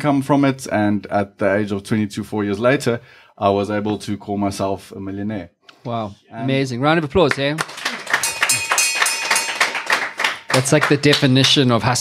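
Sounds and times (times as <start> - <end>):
rapid clapping: 7.2 - 12.0
steady high ringing tone: 8.2 - 10.6.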